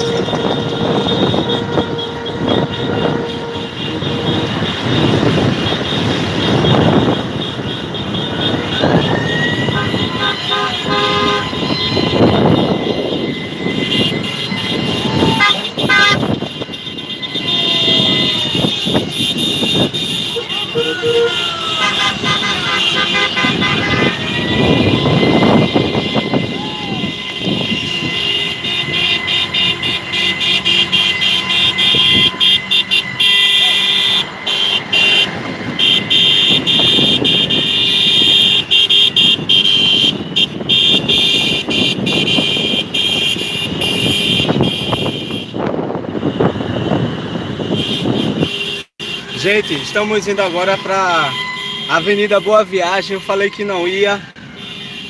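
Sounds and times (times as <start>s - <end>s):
wind buffeting microphone: 0.0s - 20.4s, 22.1s - 33.2s, 34.2s - 48.6s
car horns honking: 0.0s - 55.0s.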